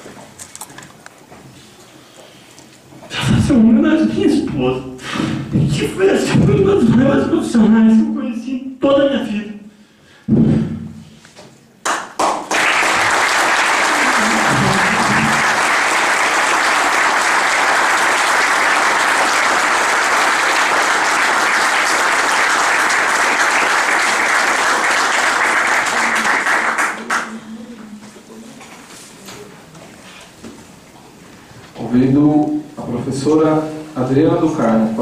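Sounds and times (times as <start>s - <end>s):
crowd applause: 11.9s - 27.4s.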